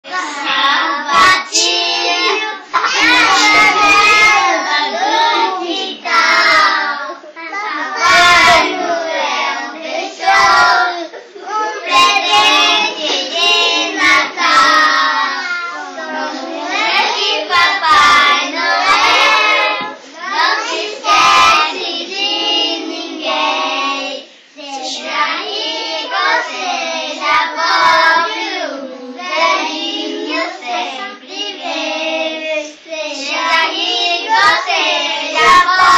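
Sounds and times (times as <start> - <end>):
children singing: 0.0 - 35.9.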